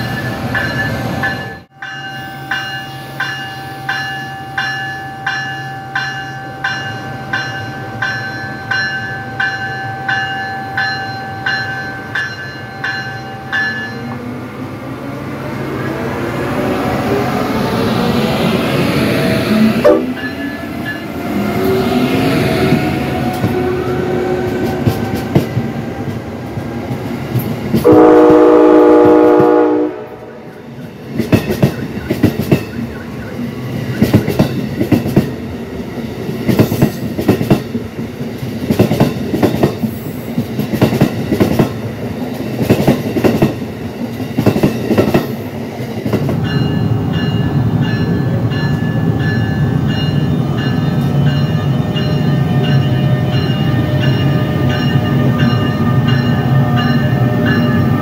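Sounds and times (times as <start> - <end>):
train horn chord: 19.8 - 20.3, 27.8 - 30.6
wheels clattering on rails: 31.0 - 35.4.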